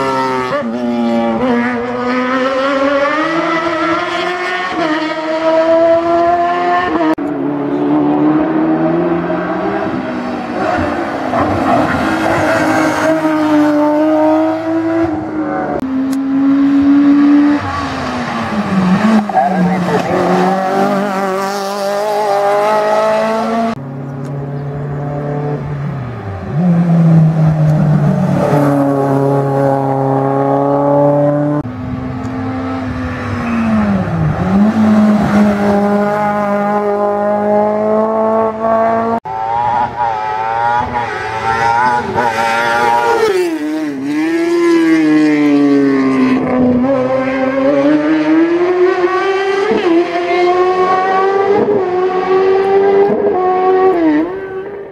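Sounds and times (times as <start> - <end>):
racing car engines revving high: 0.0 - 54.9.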